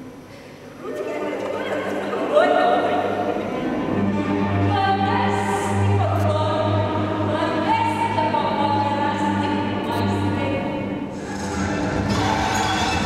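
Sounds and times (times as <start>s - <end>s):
cello melody: 3.1s - 13.0s.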